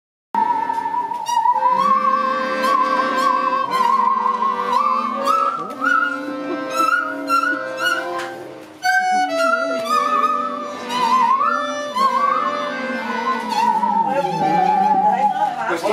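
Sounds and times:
bowed musical saws melody: 0:00.4 - 0:15.6
accordion chords: 0:00.4 - 0:15.9.

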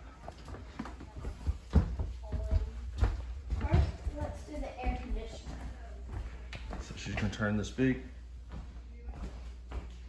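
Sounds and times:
footsteps on wood floor: 0:00.0 - 0:07.5, 0:08.1 - 0:10.0.

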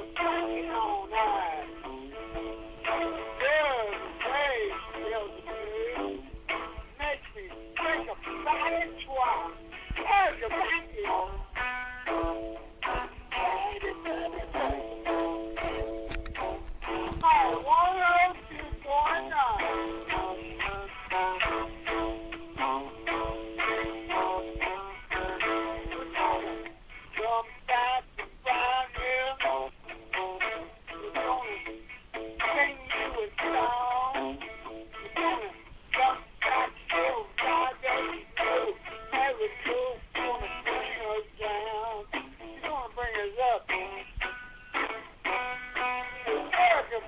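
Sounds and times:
man singing: 0:00.0 - 0:12.2, 0:12.8 - 0:15.9, 0:17.0 - 0:44.3, 0:46.1 - 0:47.0
guitar chords: 0:00.0 - 0:47.0.

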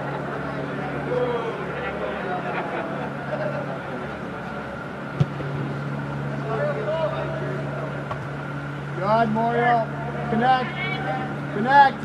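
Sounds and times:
steady low hum: 0:00.0 - 0:12.0
faint shouts of players: 0:00.9 - 0:02.0
soccer ball kick thud: 0:05.2 - 0:05.4.

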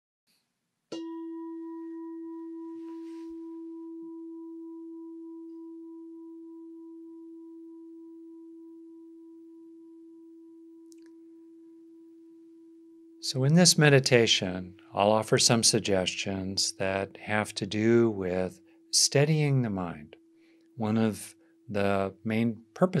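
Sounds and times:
meditation bell ringing: 0:00.9 - 0:15.2.

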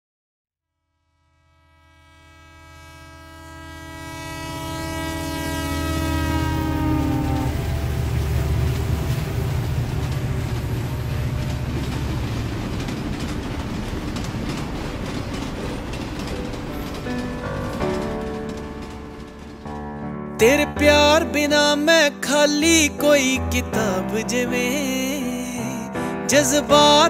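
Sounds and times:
train horn blast: 0:01.4 - 0:11.9, 0:16.2 - 0:19.8
freight train rumble and wheel clatter: 0:04.1 - 0:27.0.

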